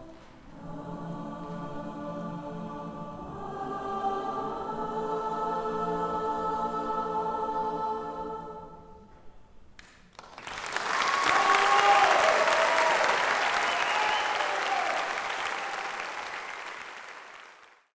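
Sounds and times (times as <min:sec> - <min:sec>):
choir holding a chord: 0:00.0 - 0:09.3
audience applause: 0:10.1 - 0:17.9
audience cheering and whooping: 0:10.6 - 0:16.8.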